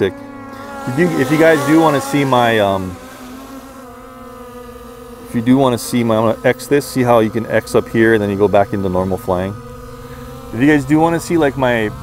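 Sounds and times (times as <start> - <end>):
drone propellers humming: 0.0 - 12.0.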